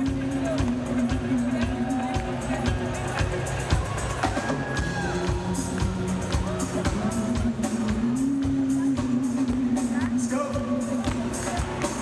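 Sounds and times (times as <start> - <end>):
live band music: 0.0 - 12.0
steady drum beat: 0.0 - 12.0.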